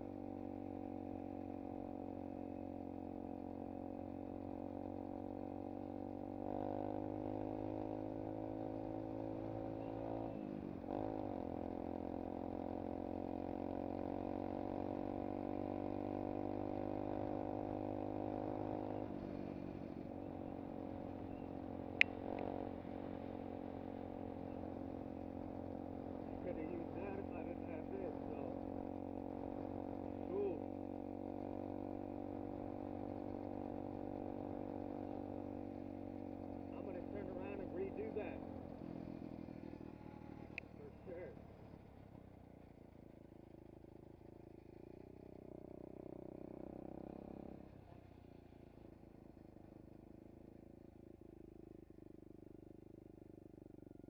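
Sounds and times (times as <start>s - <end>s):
motorcycle engine running: 0.0s - 54.0s.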